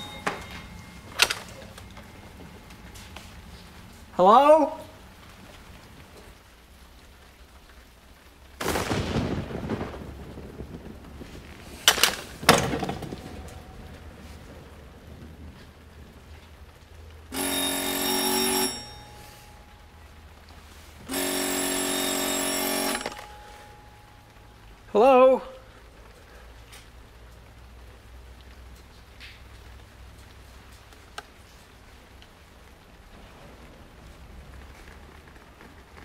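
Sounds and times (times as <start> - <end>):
telephone ringing: 0.0 - 3.4, 17.3 - 20.2, 21.1 - 24.6
thunder rumble: 0.0 - 4.2, 8.3 - 17.4, 32.4 - 36.0.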